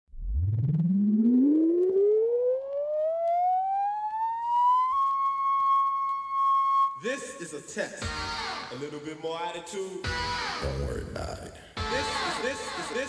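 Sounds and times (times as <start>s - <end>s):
siren winding up: 0.1s - 7.0s.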